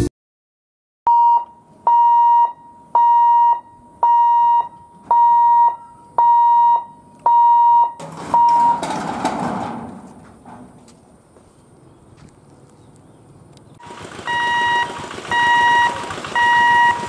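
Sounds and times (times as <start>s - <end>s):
level crossing alarm beeps: 1.1s - 8.8s, 14.3s - 17.0s.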